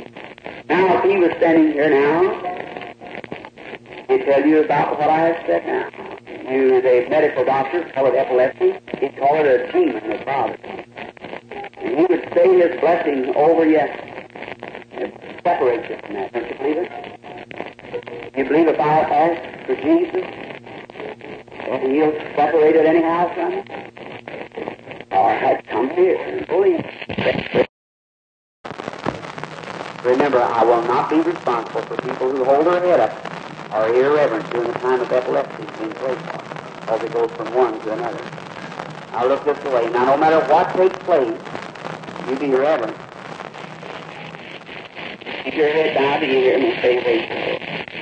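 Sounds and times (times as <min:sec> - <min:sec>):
man preaching: 0:00.7 - 0:02.7, 0:04.1 - 0:10.6, 0:30.1 - 0:36.3, 0:36.9 - 0:38.3, 0:39.1 - 0:41.5, 0:42.2 - 0:43.0, 0:45.4 - 0:47.5.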